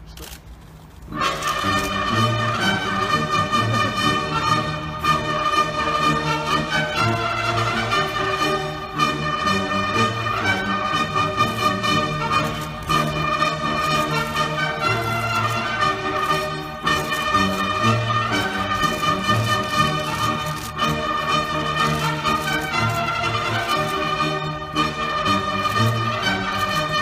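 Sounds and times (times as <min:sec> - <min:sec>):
military brass band playing: 0:01.1 - 0:27.0.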